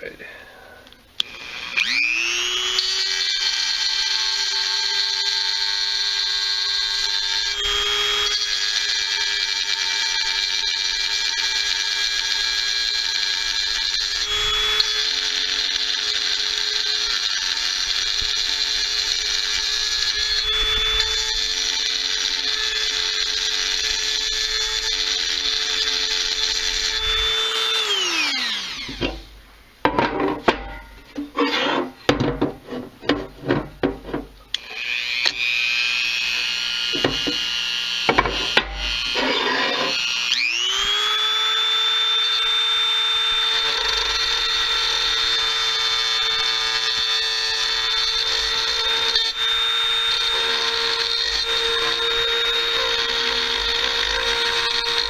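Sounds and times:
rotary tool winding down: 0:01.2 - 0:29.3, 0:34.5 - 0:55.0
rotary tool whining: 0:01.2 - 0:29.4, 0:30.8 - 0:32.1, 0:34.0 - 0:55.0
bit scraping metal: 0:30.2 - 0:34.3, 0:38.2 - 0:40.0.

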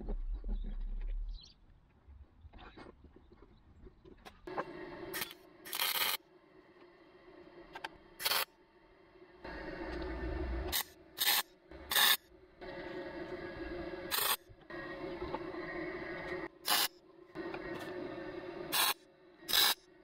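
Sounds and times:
welder buzzing and sizzling: 0:04.6 - 0:06.3, 0:08.2 - 0:08.5, 0:09.4 - 0:19.9
welding arc crackle: 0:05.2 - 0:06.2, 0:10.7 - 0:12.2, 0:14.1 - 0:14.4, 0:18.7 - 0:19.8.

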